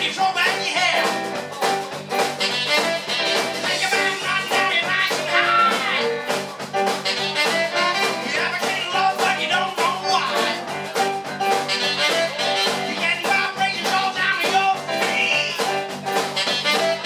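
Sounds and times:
live band playing: 0:00.0 - 0:17.0
saxophone: 0:02.1 - 0:13.7, 0:14.7 - 0:17.0.

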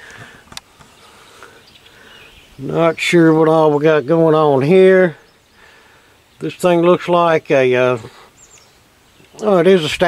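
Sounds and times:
faint birds: 0:00.0 - 0:10.0
faint insects: 0:00.0 - 0:10.0.

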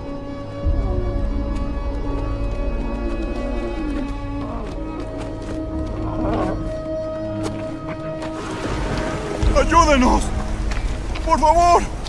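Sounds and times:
film music with held notes: 0:00.0 - 0:12.0.

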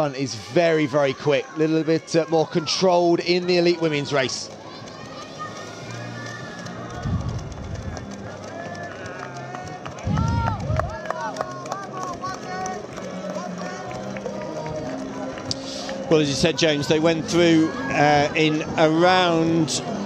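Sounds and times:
music playing: 0:00.0 - 0:20.0
spectators shouting and cheering: 0:00.0 - 0:20.0
runners' footfalls on road: 0:00.8 - 0:18.8.

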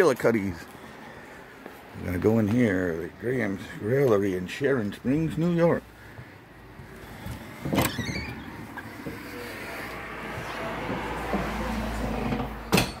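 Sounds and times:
low rumbling handling noise: 0:06.2 - 0:13.0
door squeak: 0:07.6 - 0:08.6.

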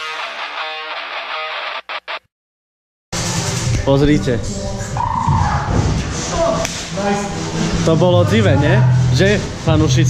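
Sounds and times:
guitar-driven soundtrack music: 0:00.0 - 0:02.3.

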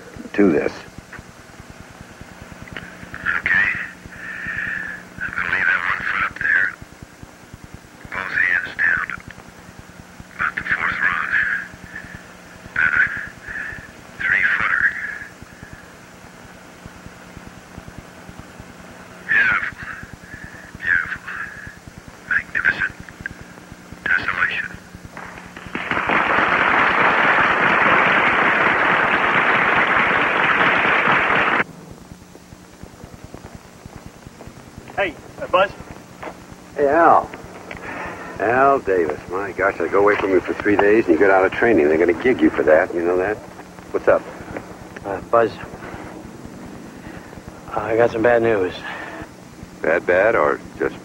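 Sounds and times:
garbled radio transmission: 0:00.0 - 0:51.0
steady low hum: 0:00.0 - 0:51.0.

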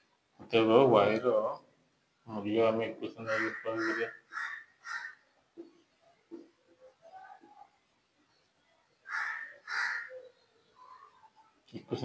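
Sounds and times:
crow cawing: 0:03.2 - 0:05.2, 0:09.0 - 0:10.2.

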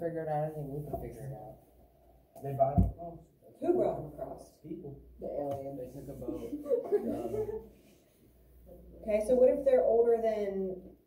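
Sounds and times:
students laughing: 0:06.3 - 0:07.9.

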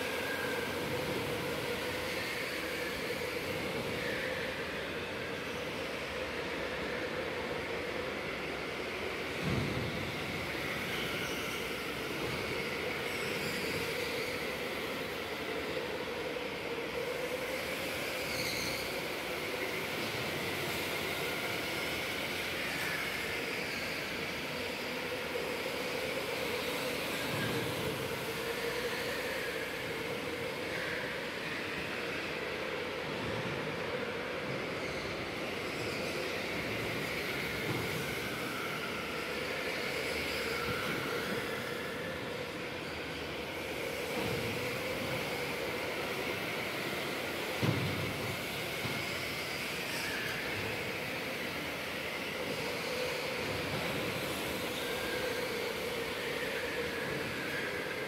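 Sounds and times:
hum of motors and tyres: 0:00.0 - 0:58.0.

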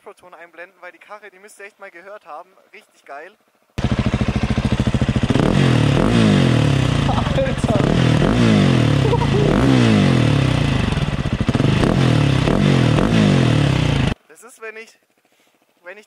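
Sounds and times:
motorcycle engine revving hard: 0:03.8 - 0:14.2.

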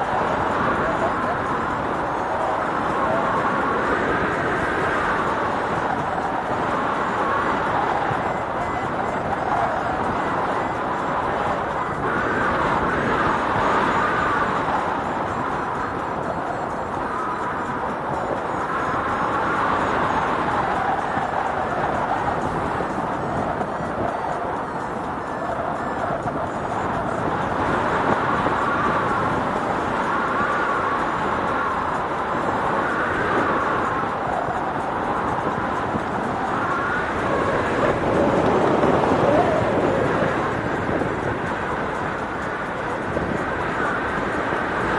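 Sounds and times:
faint wavering high tone: 0:00.0 - 0:44.9
wind rushing over microphone: 0:00.0 - 0:44.9.

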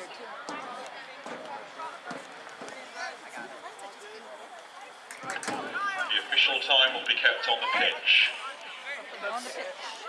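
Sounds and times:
spectators and players calling out: 0:00.5 - 0:10.0.

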